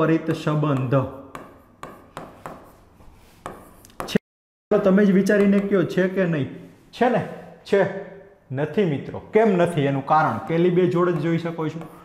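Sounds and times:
chalk tapping and scratching on board: 0.6s - 4.2s, 10.9s - 12.0s.

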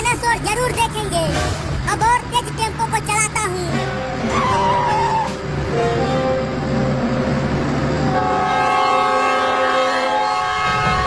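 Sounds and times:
moving train rumble: 0.0s - 11.0s
train horn long tones: 3.9s - 11.0s.

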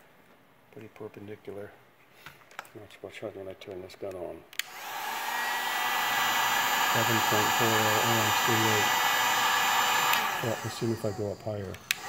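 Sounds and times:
hot air gun blowing: 4.6s - 12.0s
faint high whine: 10.2s - 12.0s.

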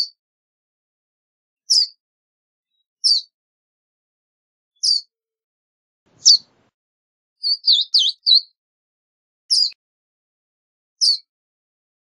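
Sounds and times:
bird chip calls: 6.1s - 6.7s, 7.4s - 8.5s.

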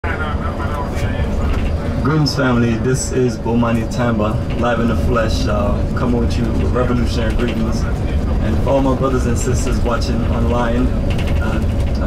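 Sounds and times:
bus engine rumble from inside: 0.0s - 12.0s
faint voices talking: 0.0s - 12.0s.

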